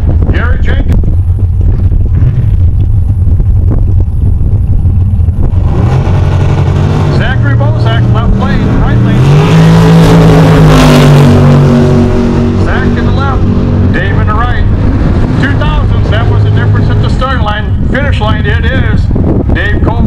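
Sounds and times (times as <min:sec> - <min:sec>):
drag racing cars passing: 0:00.0 - 0:20.0.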